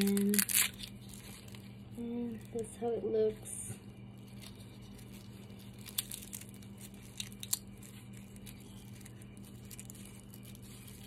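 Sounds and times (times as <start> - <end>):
garlic skin crackling and rustling: 0.0 - 2.7, 4.1 - 11.0
steady low hum: 0.0 - 11.0.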